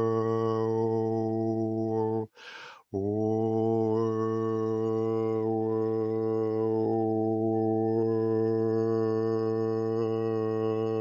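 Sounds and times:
man overtone singing: 0.0 - 11.0.

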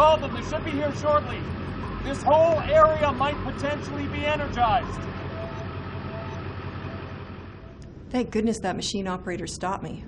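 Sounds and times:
diesel engine idling: 0.0 - 7.8.

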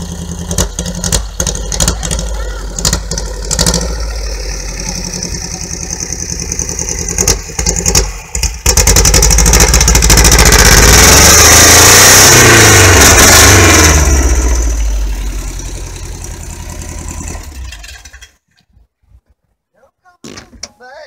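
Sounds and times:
car engine idling and revving: 0.0 - 18.4.

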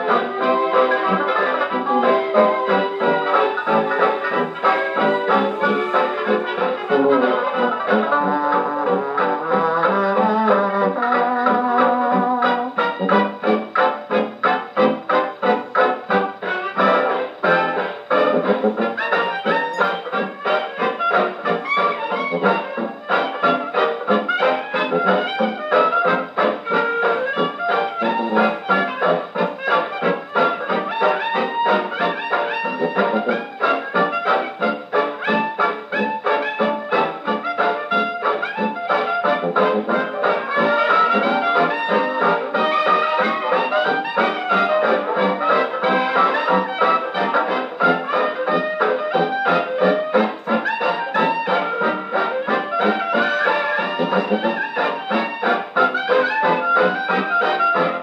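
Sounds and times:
dance band record on gramophone: 0.0 - 58.0.

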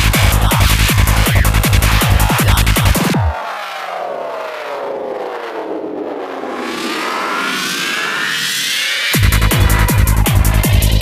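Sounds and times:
filtered noise wash: 0.0 - 11.0
rising synth sweep: 0.6 - 10.7
synth tone sweeping downward: 1.5 - 10.4.

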